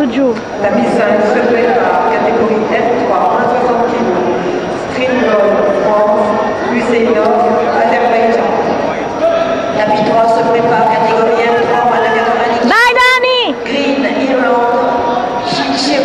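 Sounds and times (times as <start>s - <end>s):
men talking: 6.6s - 9.8s.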